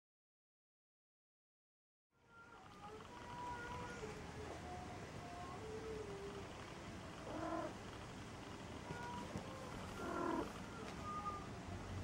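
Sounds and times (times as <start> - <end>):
cat mewing: 7.2 - 7.8, 8.8 - 11.5.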